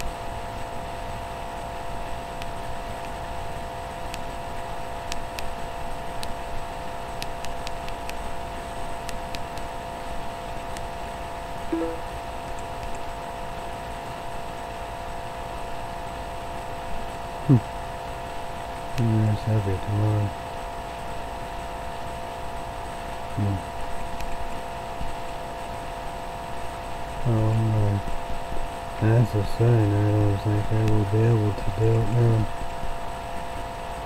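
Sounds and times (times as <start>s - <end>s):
steady room hum: 0.0s - 34.0s
brief falling sound: 11.7s - 12.1s
faint scattered clicks: 30.8s - 31.0s.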